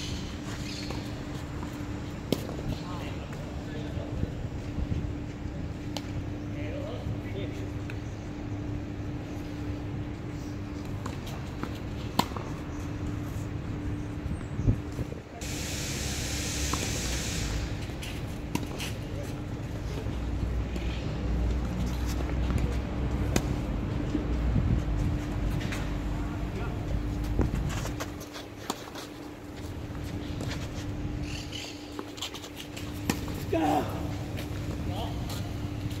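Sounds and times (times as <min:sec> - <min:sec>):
constant hum: 0:00.0 - 0:36.0
steady hiss: 0:15.4 - 0:17.9
low outdoor rumble: 0:17.4 - 0:36.0.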